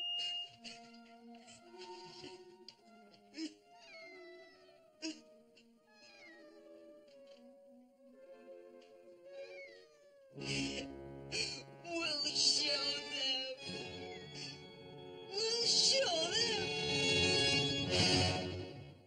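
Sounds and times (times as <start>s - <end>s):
soft music with held notes: 0.0s - 19.0s
boy sobbing: 0.5s - 5.4s.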